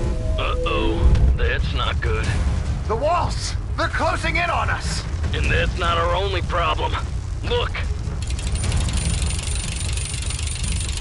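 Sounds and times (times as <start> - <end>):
low rumble: 0.0 - 11.0
rapid mechanical clicking clatter: 8.1 - 11.0.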